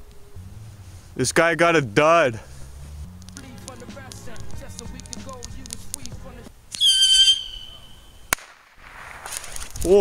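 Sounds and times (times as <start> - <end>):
soft hiss: 0.0 - 1.4, 2.2 - 10.0
whistling firework: 6.7 - 9.8
firework bang: 8.3 - 9.8.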